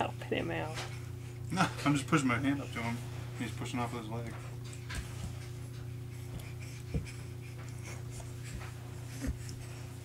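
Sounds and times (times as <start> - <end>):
steady low hum: 0.0 - 10.0
baby scuffing on carpet: 4.1 - 10.0.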